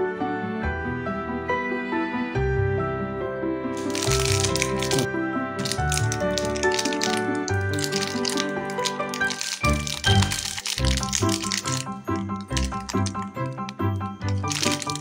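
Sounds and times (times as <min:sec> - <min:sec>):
background music: 0:00.0 - 0:15.0
plastic wrapper crinkling: 0:03.8 - 0:15.0.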